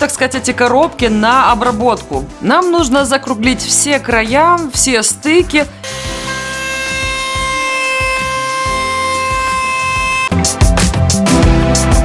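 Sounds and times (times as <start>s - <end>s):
router motor whining: 5.8s - 10.3s
background music with beat: 7.0s - 12.0s.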